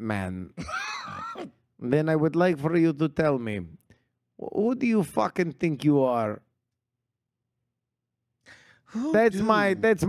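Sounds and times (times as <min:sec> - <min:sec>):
person speaking: 0:08.9 - 0:10.0.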